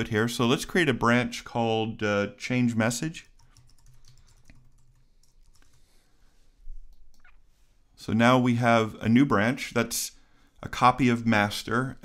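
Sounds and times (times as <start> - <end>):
typing on computer keyboard: 3.3 - 5.8.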